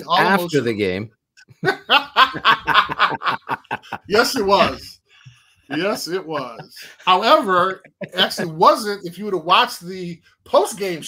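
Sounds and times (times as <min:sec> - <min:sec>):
men laughing hard: 0:01.6 - 0:04.8, 0:05.7 - 0:08.6.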